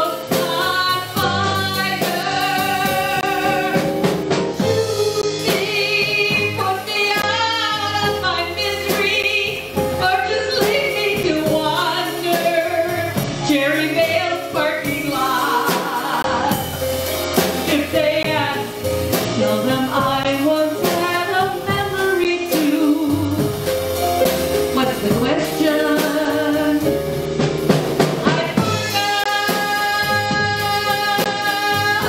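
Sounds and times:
woman singing into a microphone: 0.0 - 4.0, 4.6 - 16.9, 17.6 - 23.7, 24.7 - 27.0, 28.2 - 32.0
drum kit with cymbals: 0.0 - 32.0.

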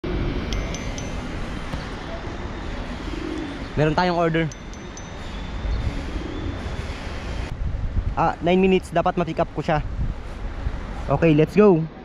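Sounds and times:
street noise: 0.0 - 12.0
wind: 0.0 - 12.0
phone notification pings: 0.5 - 2.0, 4.5 - 5.4.

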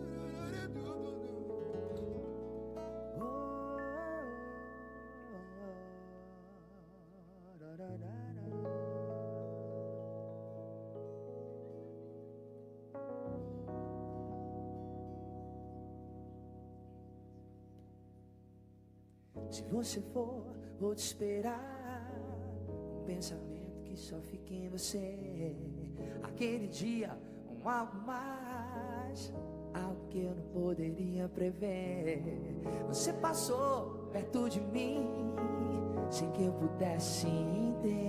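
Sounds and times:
person speaking: 0.0 - 2.4
acoustic guitar: 0.0 - 4.4
long held notes: 0.0 - 7.4
sustained chord ringing: 0.0 - 7.4.

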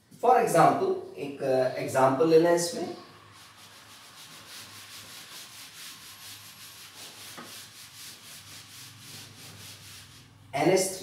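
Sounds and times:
duster scrubbing a whiteboard: 3.0 - 10.6.

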